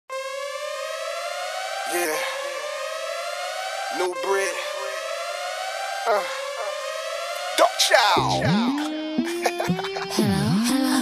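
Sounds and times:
siren wail climbing in pitch: 0.1s - 11.0s
person saying yeah: 8.1s - 8.6s.

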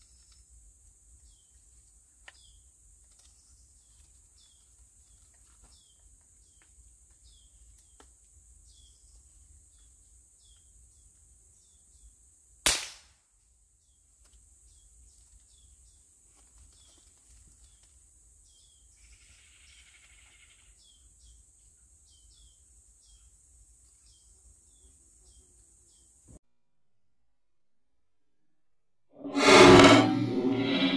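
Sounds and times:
air rifle shot: 12.7s - 13.0s.

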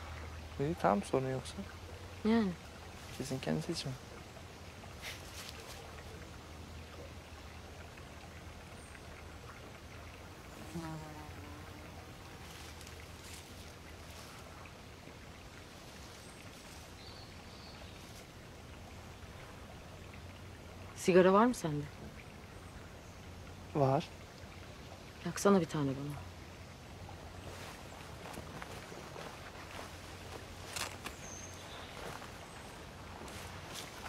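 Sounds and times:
soft hiss and low hum: 0.0s - 34.0s
faint insect buzzing: 10.5s - 14.5s.

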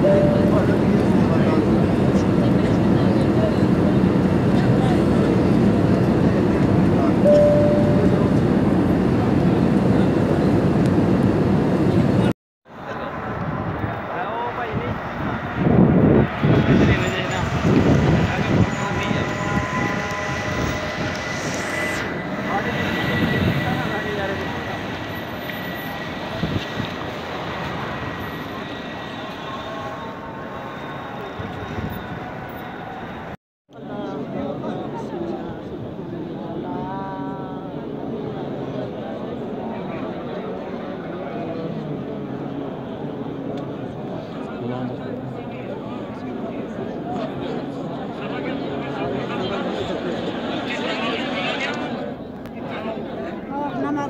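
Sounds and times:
jet airliner cabin noise: 0.0s - 33.4s
people's voices on street: 0.0s - 54.0s
street noise: 0.0s - 54.0s.

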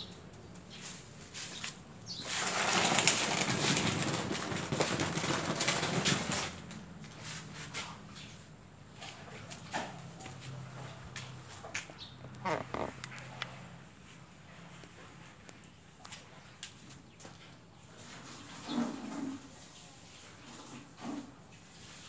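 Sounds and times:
plastic pot scraping on concrete: 1.3s - 8.0s, 11.9s - 13.5s, 18.3s - 19.5s.

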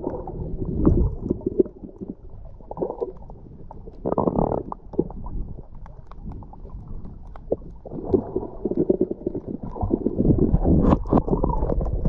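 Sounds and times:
underwater gurgling: 0.0s - 12.0s
faint clicks: 3.0s - 7.8s
burst of bubbling: 4.0s - 5.2s.

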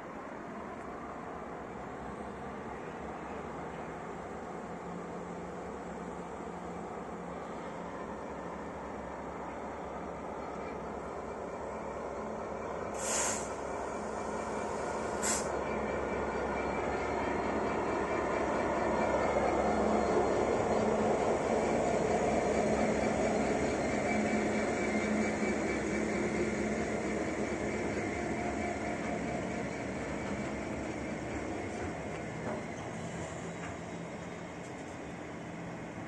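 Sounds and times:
diesel locomotive engine: 0.0s - 36.0s.

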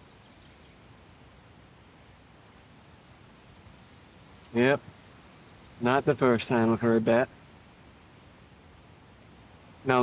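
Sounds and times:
faint high bird chirps: 0.0s - 3.3s
faint steady hiss: 0.0s - 10.0s.

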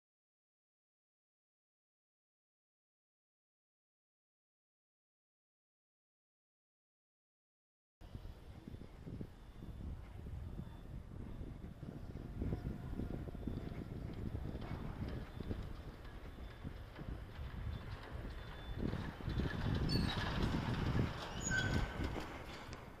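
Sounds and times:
short high squeaks: 18.3s - 22.8s.

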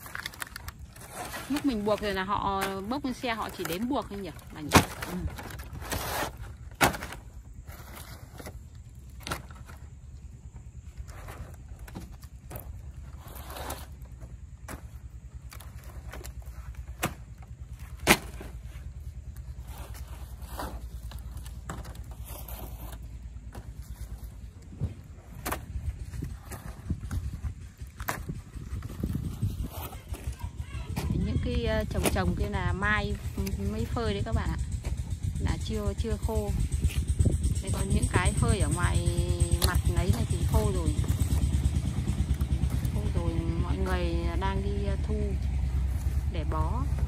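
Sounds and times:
steady low rumble: 0.0s - 47.0s.

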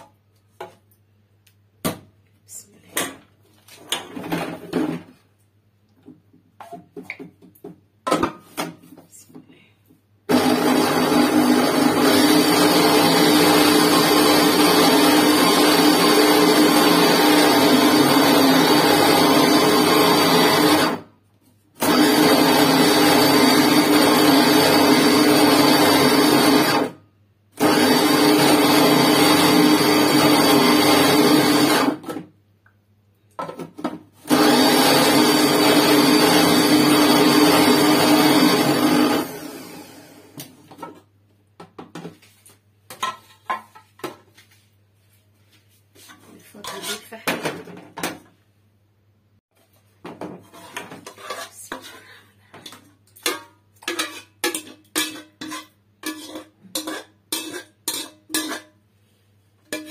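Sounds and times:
electric blender motor: 10.3s - 21.0s, 21.8s - 27.0s, 27.6s - 32.1s, 34.2s - 40.4s.

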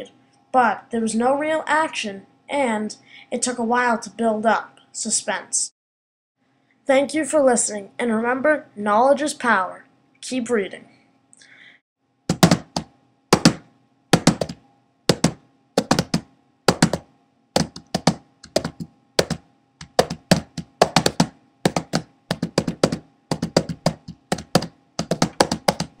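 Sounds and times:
sharp taps: 12.3s - 13.6s, 14.2s - 17.0s, 17.6s - 26.0s.

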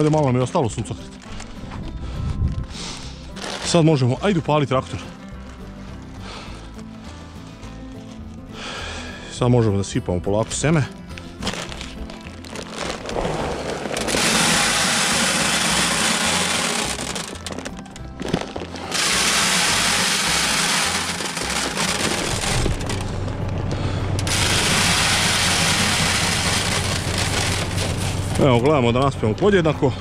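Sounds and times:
background music: 0.0s - 30.0s
seed pouring into plastic hopper: 11.4s - 23.2s, 24.2s - 28.6s.

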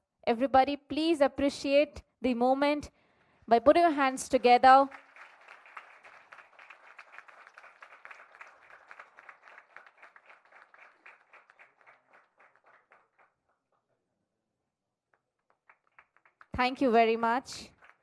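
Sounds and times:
faint audience applause: 4.2s - 13.7s, 15.2s - 16.8s, 17.6s - 18.0s.

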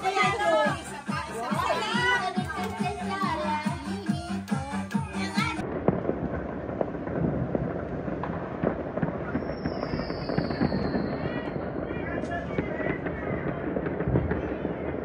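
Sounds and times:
fireworks and firecrackers crackling: 0.0s - 15.0s
high falling whistle: 9.2s - 11.6s.

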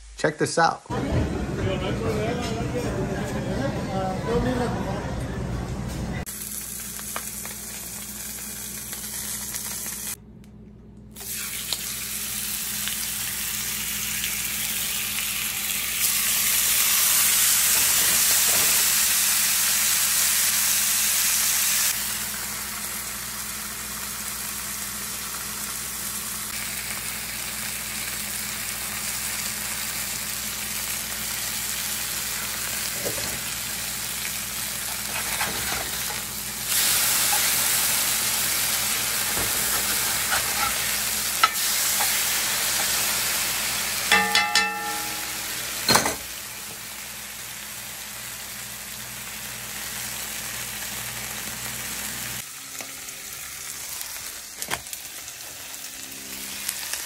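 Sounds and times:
meat sizzling in a skillet: 6.3s - 10.2s, 11.2s - 57.0s.

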